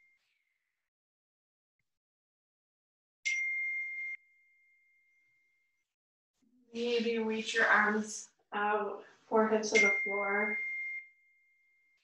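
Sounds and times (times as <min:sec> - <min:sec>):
high ringing tone: 0:00.0 - 0:00.4, 0:03.3 - 0:05.8, 0:09.7 - 0:12.0.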